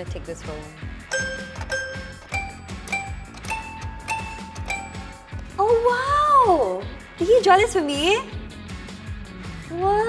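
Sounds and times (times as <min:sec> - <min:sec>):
background music with steady beat: 0:00.0 - 0:10.0
toy piano notes: 0:01.1 - 0:05.4.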